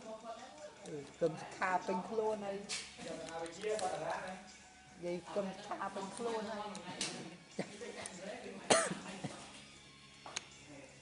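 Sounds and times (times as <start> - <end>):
cough-like vocal burst: 8.7 - 9.1.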